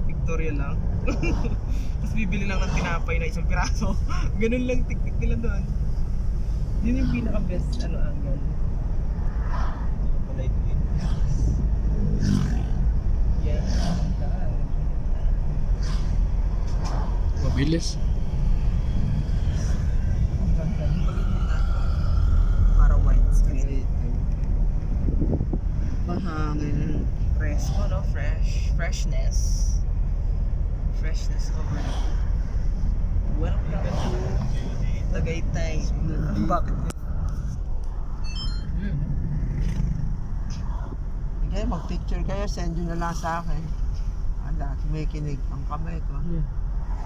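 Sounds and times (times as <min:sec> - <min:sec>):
road noise: 0:00.0 - 0:47.0
vehicle engine rumble: 0:00.0 - 0:47.0.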